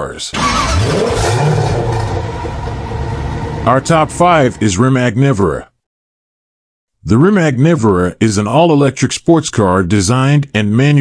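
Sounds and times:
car engine revving: 0:00.4 - 0:04.6.

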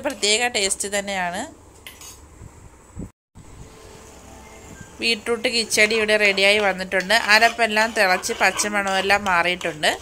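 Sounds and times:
woman speaking: 0:05.0 - 0:10.0.

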